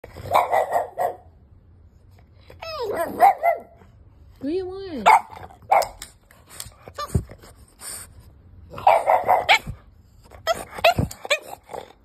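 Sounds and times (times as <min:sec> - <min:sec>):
puppy barking: 0:00.2 - 0:01.3, 0:02.6 - 0:03.8, 0:05.0 - 0:06.0, 0:08.7 - 0:09.8.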